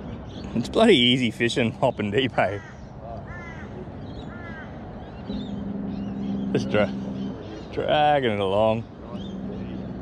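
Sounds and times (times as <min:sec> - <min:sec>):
crow cawing: 0:02.5 - 0:07.7
steady low hum: 0:05.2 - 0:10.0.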